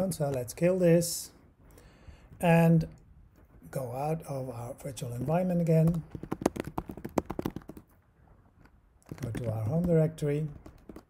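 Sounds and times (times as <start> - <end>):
fast typing on keyboard: 5.2 - 7.9, 9.0 - 11.0.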